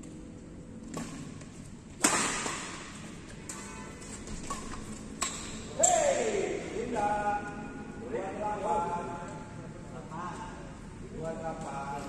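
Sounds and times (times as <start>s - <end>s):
rackets striking shuttlecock: 0.8s - 6.2s.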